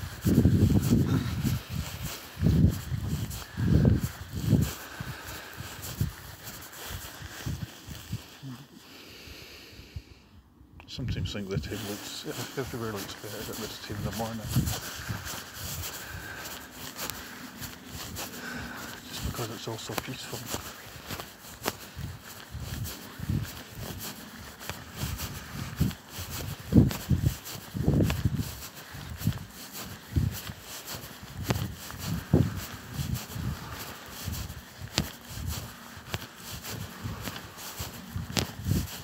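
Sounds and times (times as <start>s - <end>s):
barefoot footsteps on grass: 0.0s - 8.8s, 11.0s - 39.0s
camera handling rustle: 28.0s - 39.0s.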